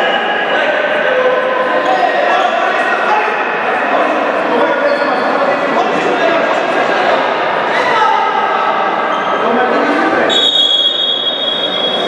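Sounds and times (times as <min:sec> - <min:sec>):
murmur of sports hall: 0:00.0 - 0:12.0
referee's whistle blast: 0:10.3 - 0:12.0.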